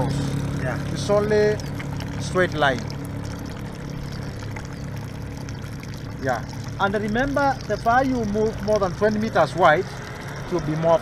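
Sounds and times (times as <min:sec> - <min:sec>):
steady low hum: 0:00.0 - 0:11.0
water trickling onto dirt: 0:00.0 - 0:11.0.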